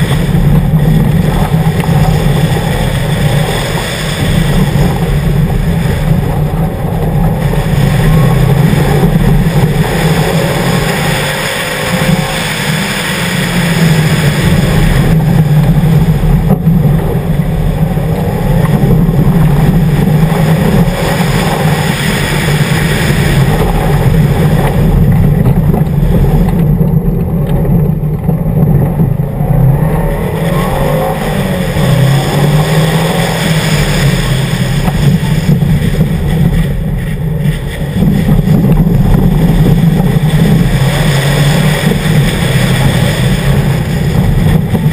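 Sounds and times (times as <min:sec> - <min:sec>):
gravel and road noise: 0:00.0 - 0:44.9
rally car engine revving: 0:00.0 - 0:44.9.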